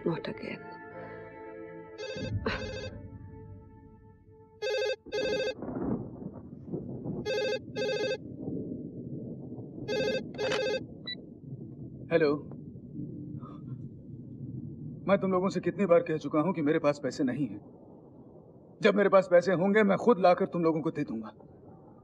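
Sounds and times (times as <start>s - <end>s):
telephone double ring: 4.6s - 5.6s, 7.3s - 8.2s, 9.9s - 10.8s.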